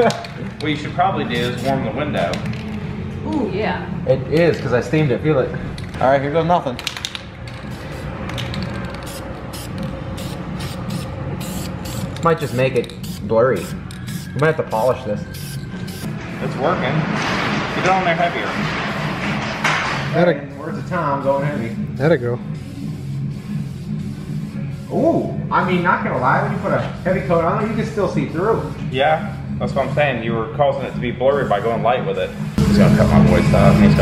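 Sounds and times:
aerosol spray can hissing: 9.0 - 14.3, 15.3 - 16.1.

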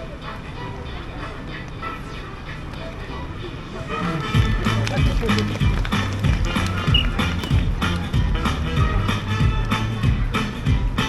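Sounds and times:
music with heavy bass beat: 4.3 - 11.0.

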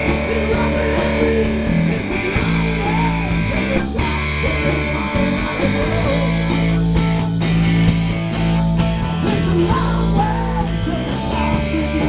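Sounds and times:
bass guitar: 0.0 - 12.0
drum kit: 0.0 - 12.0
electric guitars: 0.0 - 12.0.

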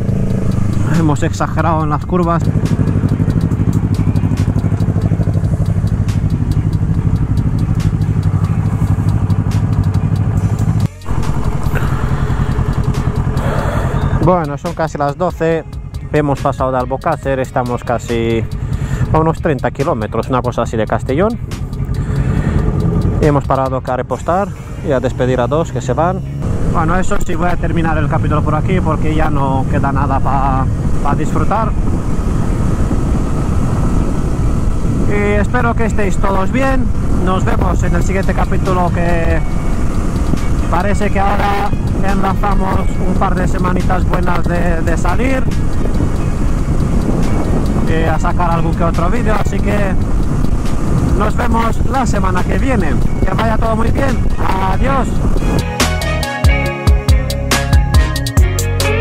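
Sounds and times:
wind rushing over microphone: 0.0 - 19.4, 26.4 - 55.8
motorcycle engine idling: 0.0 - 23.7
motorcycle engine and tyre drone: 0.0 - 56.1.

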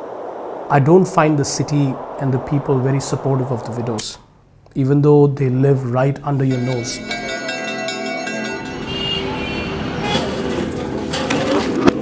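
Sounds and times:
street traffic: 6.6 - 12.0
car horn toots: 7.2 - 10.9.

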